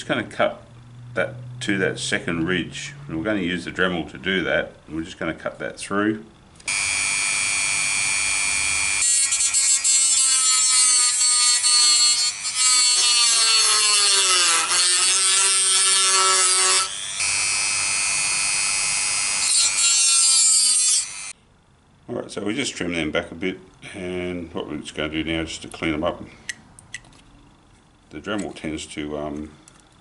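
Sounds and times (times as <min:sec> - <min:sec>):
rotary tool cutting plastic: 0:08.8 - 0:21.3.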